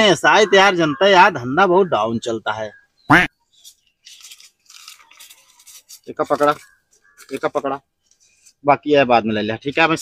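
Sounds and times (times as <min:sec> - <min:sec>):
banknotes rustling: 0:03.5 - 0:08.6.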